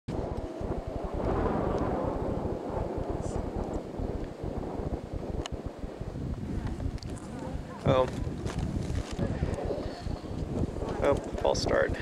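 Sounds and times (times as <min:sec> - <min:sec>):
wind buffeting microphone: 0:00.1 - 0:12.0
faint voices: 0:07.1 - 0:12.0.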